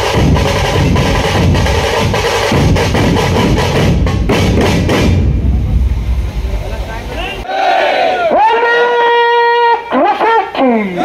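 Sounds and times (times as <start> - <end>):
loud drumming: 0.0 - 7.5
crowd noise: 3.4 - 11.0.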